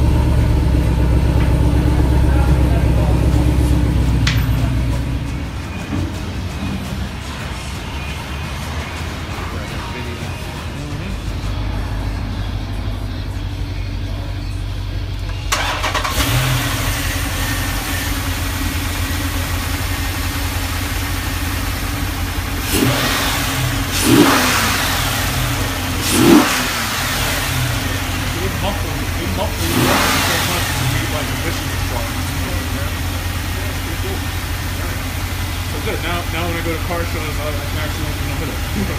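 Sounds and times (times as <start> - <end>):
car engine idling: 0.0 - 38.9
engine revving: 0.0 - 38.9.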